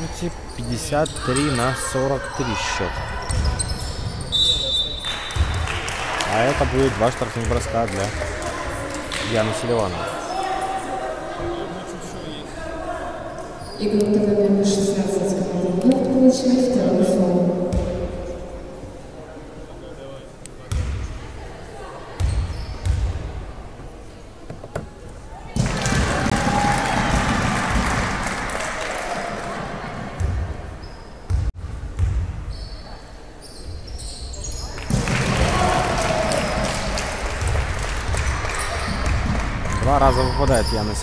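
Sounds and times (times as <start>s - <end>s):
crowd noise and shouting: 0.0s - 31.3s, 34.2s - 41.0s
basketball bouncing on floor: 17.7s - 18.2s.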